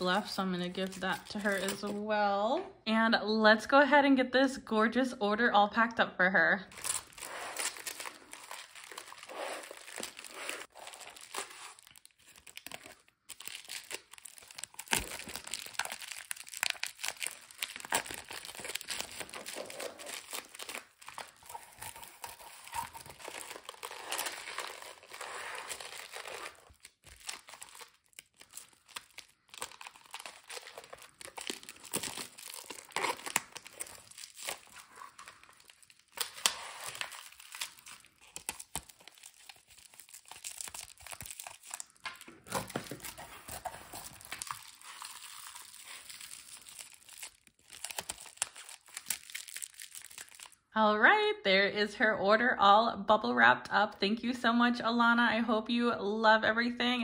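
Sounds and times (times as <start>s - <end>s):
bubble wrap crinkling: 0.0s - 2.0s, 6.7s - 50.7s.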